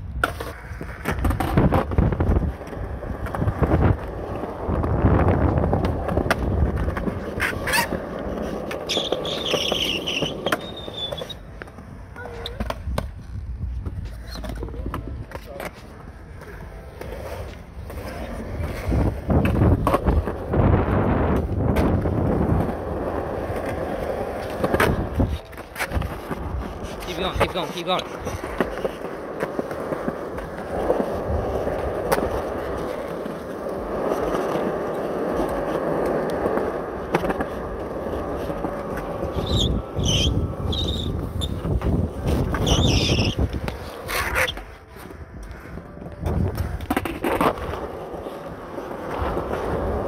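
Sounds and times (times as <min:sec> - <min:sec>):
skateboard wheels rolling on concrete: 0:00.0 - 0:50.0
skateboard clacking on ground: 0:00.1 - 0:50.0.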